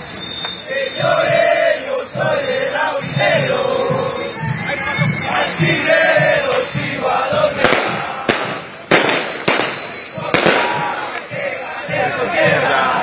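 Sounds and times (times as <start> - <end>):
firecracker bangs: 0.0 - 12.0
crowd chanting: 0.0 - 13.0.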